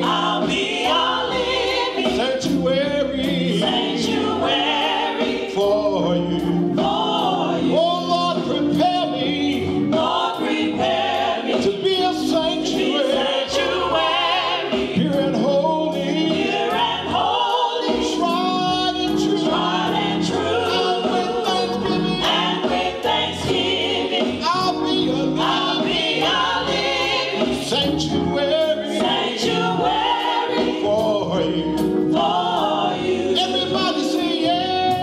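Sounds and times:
gospel vocal group singing: 0:00.0 - 0:35.0
instrumental accompaniment with beat: 0:00.0 - 0:35.0.

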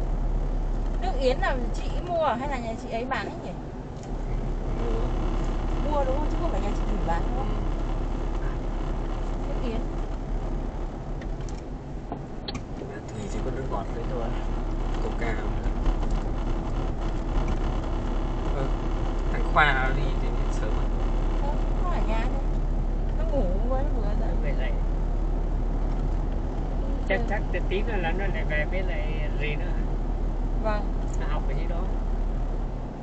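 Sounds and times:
car cabin road and engine rumble: 0:00.0 - 0:33.0.

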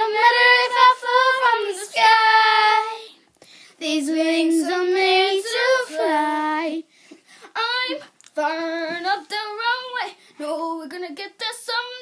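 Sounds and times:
girls singing unaccompanied: 0:00.0 - 0:03.2, 0:03.8 - 0:06.9, 0:07.6 - 0:12.0.

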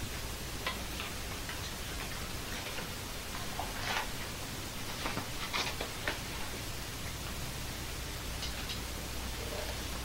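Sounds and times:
videotape hiss: 0:00.0 - 0:10.0.

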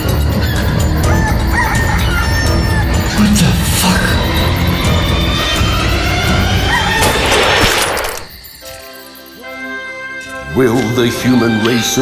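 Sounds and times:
film score music: 0:00.0 - 0:12.0.

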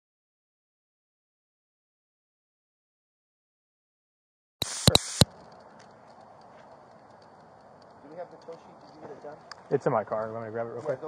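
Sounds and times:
loud burst of noise: 0:04.6 - 0:05.2
faint high ticks: 0:04.6 - 0:10.3.

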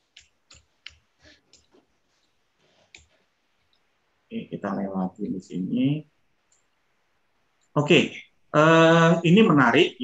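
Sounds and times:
faint computer clicks: 0:00.0 - 0:03.9.

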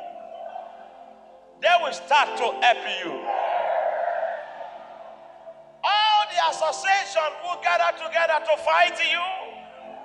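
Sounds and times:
faint low background tones: 0:00.0 - 0:10.0
man preaching: 0:01.6 - 0:03.3, 0:05.8 - 0:09.6.

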